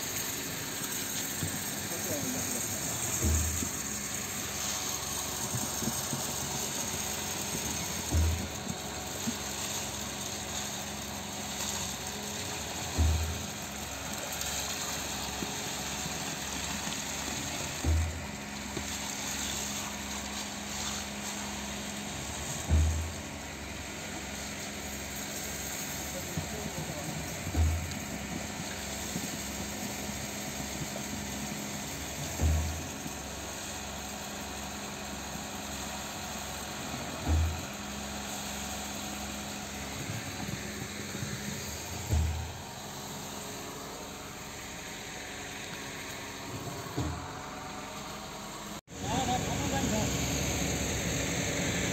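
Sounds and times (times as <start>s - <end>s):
concrete pump running: 0.0s - 51.9s.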